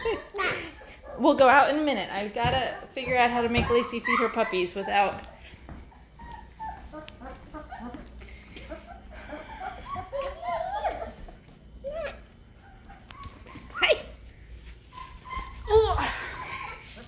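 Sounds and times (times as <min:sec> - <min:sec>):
puppies whining: 0:00.0 - 0:17.0.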